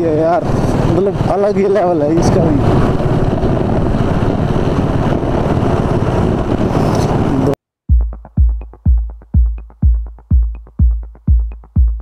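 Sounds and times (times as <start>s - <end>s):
motorcycle engines running: 0.0s - 7.5s
wind noise on microphone: 0.0s - 7.6s
electronic music with kick drum: 7.9s - 12.0s.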